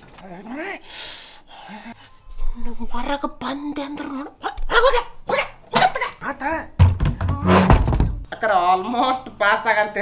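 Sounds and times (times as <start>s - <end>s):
heavy low thud rumbling: 6.9s - 8.2s.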